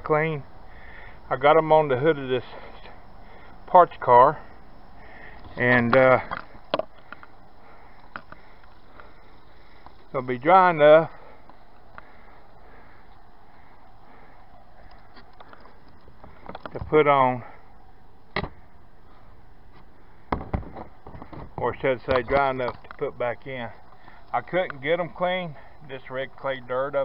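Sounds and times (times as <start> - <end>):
low steady hiss: 0.0 - 27.0.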